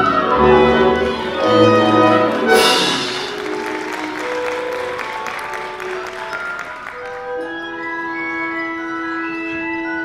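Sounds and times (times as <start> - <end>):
orchestra soft held notes: 0.0 - 6.3
audience applauding: 1.1 - 7.6.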